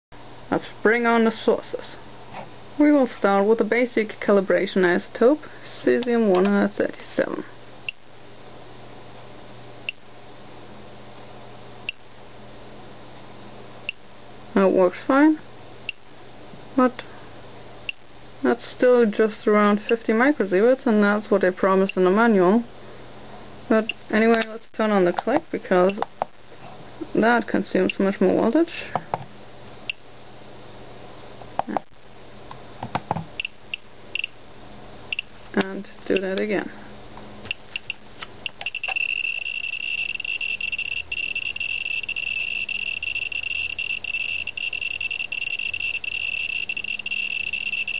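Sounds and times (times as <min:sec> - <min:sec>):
steady low hum: 0:00.1 - 0:47.9
geiger counter clicks: 0:33.4 - 0:34.3, 0:37.5 - 0:47.9
high-pitched electronic beeps: 0:33.4 - 0:34.3, 0:37.5 - 0:47.9.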